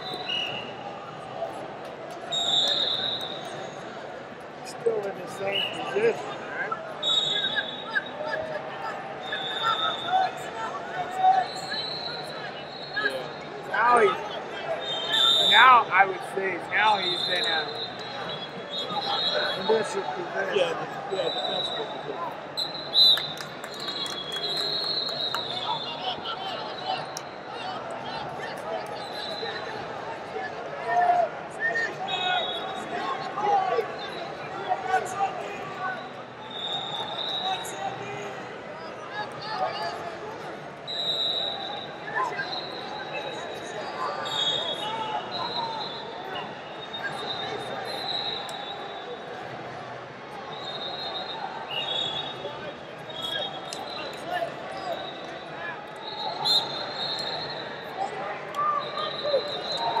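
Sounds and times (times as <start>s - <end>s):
referee whistle blasts: 0.0s - 0.8s, 2.3s - 3.8s, 7.0s - 8.2s, 9.2s - 10.4s, 11.4s - 13.5s, 14.8s - 15.8s, 16.9s - 20.1s, 22.6s - 27.4s, 31.9s - 33.1s, 36.0s - 37.9s, 40.9s - 49.3s, 50.5s - 60.0s
crowd voices and shouts: 0.0s - 60.0s.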